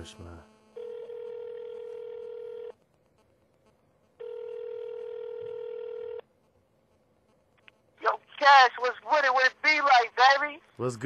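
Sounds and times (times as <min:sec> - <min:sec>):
telephone ringback tone: 0:00.8 - 0:02.7, 0:04.2 - 0:06.2.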